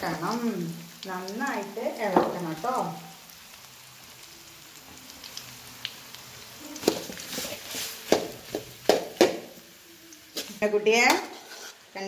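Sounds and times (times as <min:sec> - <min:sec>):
food sizzling in a pan: 0:00.0 - 0:12.0
spatula knocking on pan: 0:08.1 - 0:09.5.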